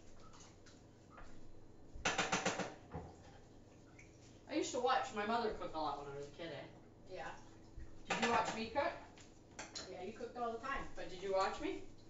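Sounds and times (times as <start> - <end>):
sharp clicking knocks: 2.0 - 2.8.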